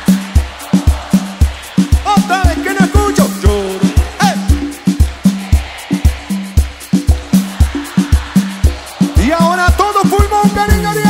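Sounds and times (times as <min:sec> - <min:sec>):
live cumbia band music: 0:00.0 - 0:11.0.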